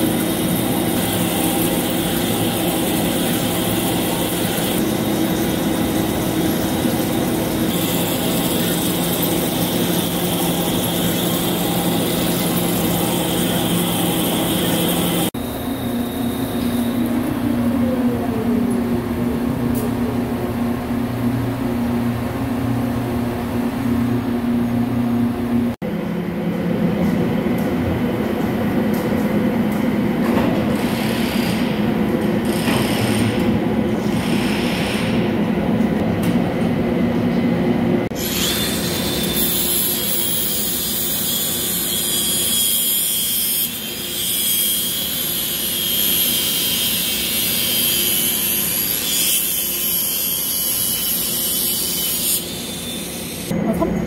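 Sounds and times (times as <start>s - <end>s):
grinder whining: 0.0s - 18.8s
lathe machine drone: 0.0s - 21.7s.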